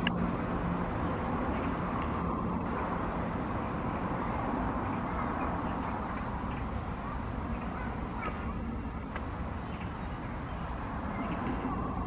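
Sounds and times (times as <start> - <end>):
train rumbling: 0.0 - 12.0
chirping bird calls: 1.0 - 12.0.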